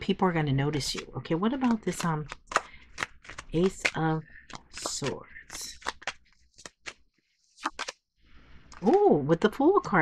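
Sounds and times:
cards snapping while shuffled: 0.8s - 7.0s, 7.6s - 8.0s.

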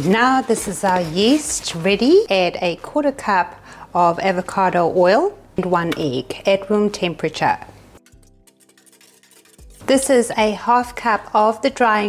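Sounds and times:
quiet background music: 0.0s - 12.0s
hand whisk beating in metal bowl: 8.0s - 10.1s.

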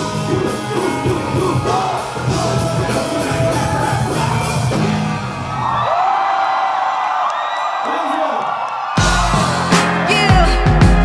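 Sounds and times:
band beat: 0.0s - 5.4s, 9.0s - 11.0s
crowd cheering: 0.0s - 11.0s.

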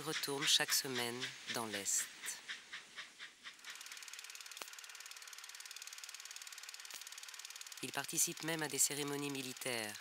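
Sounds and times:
fast mechanical ticking: 3.4s - 10.0s.

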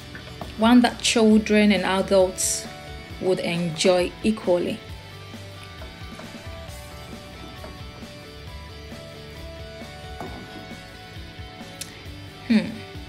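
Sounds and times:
soft instrumental music: 0.0s - 13.0s.

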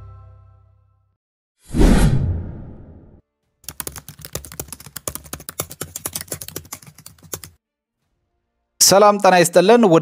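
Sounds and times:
computer keyboard typing: 3.6s - 7.6s.

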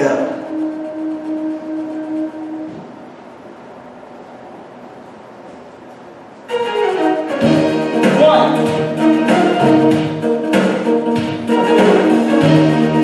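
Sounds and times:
orchestral string music: 6.5s - 13.0s.

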